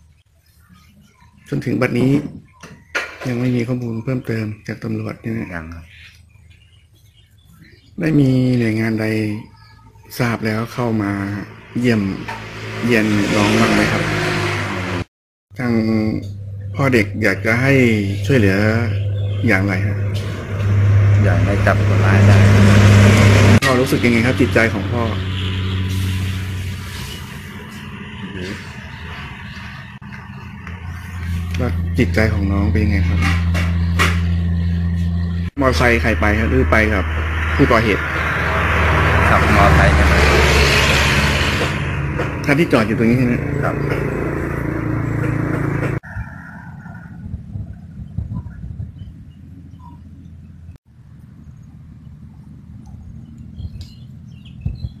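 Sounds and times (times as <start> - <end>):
faint bird chirps: 0.0 - 11.9, 46.1 - 50.6
engine humming: 1.5 - 55.0
low steady rumble: 15.6 - 25.4, 46.7 - 54.4
loud sound cut off: 16.6 - 29.2, 31.2 - 46.0.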